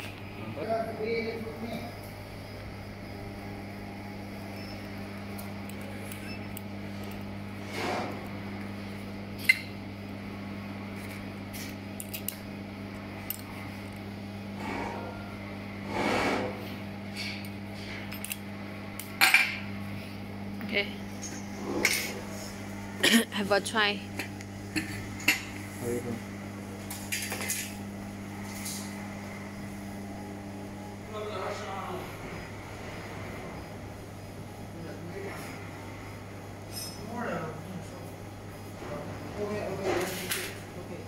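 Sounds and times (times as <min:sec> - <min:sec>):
low electrical hum: 0:00.0 - 0:41.0.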